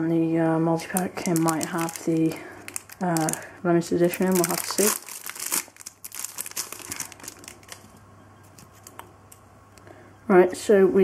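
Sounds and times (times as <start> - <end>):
foil packet crinkling: 0.8 - 9.0.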